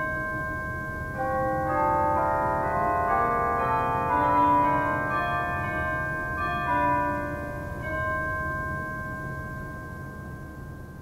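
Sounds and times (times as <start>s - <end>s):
ringing bell-like chords: 0.0s - 11.0s.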